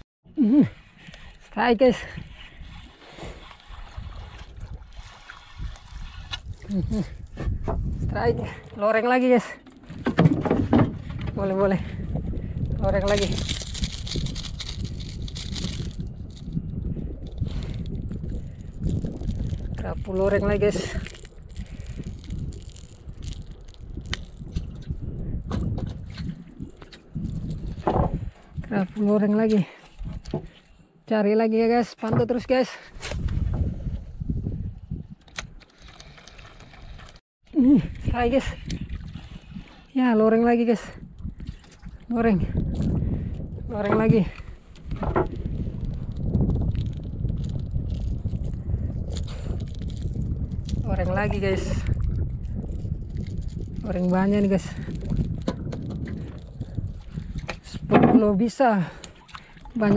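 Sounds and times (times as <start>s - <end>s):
wind rumble on microphone: 0.3s - 59.9s.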